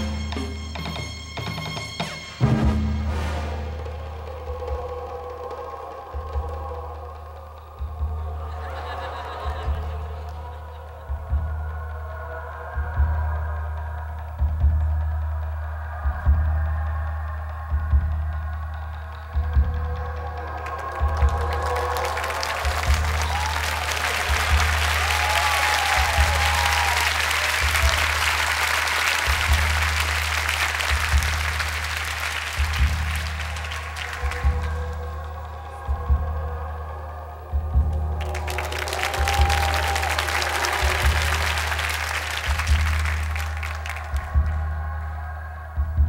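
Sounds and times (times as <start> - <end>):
background music with slow bass beat: 3.7 - 46.0
audience applauding: 3.9 - 12.8, 17.9 - 36.5, 37.7 - 45.4.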